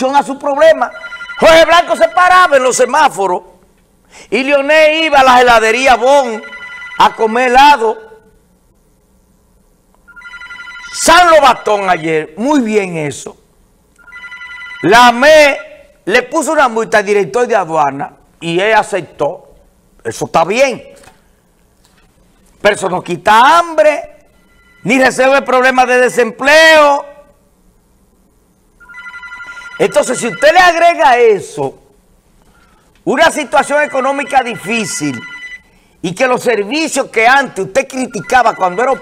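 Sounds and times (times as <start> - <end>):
telephone ringing: 0.6 - 3.0, 5.9 - 8.1, 10.1 - 11.9, 14.0 - 15.8, 24.2 - 25.8, 28.8 - 31.0, 33.3 - 35.8, 37.8 - 39.0.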